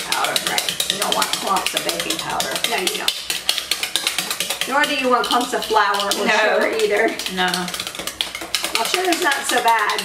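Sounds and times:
whisk clicking against bowl: 0.0 - 10.0.

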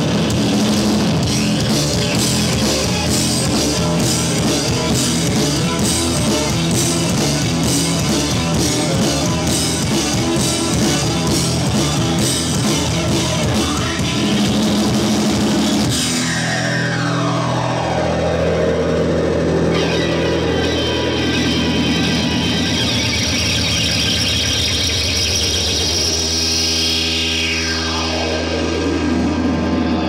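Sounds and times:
electric guitar and synthesizer drones: 0.0 - 30.0.

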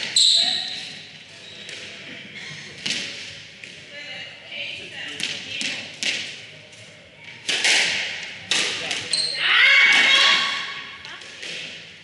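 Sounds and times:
court shoes squealing on wood: 0.0 - 1.7, 9.1 - 9.5.

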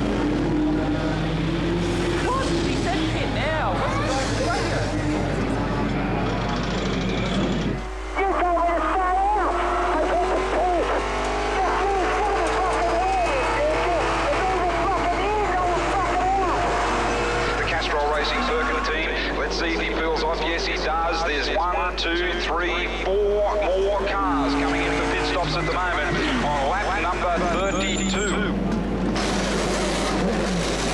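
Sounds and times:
racing car engine revving: 0.0 - 30.9.

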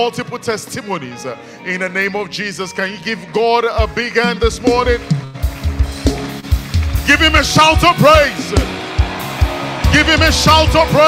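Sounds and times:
keyboard chords: 0.0 - 11.0
bass and drum beats: 3.8 - 11.0
congregation applauding: 5.3 - 11.0.

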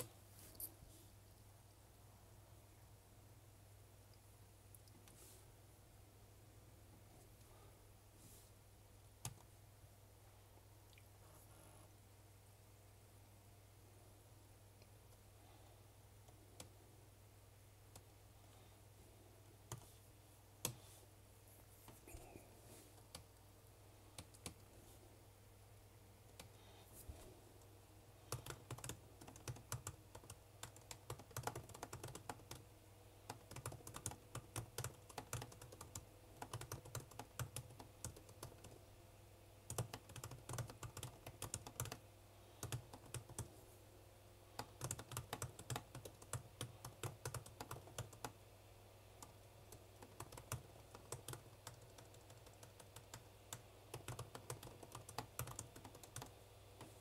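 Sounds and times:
faint steady hum: 0.0 - 57.0
keyboard typing clicks: 39.7 - 42.0, 50.0 - 56.9.

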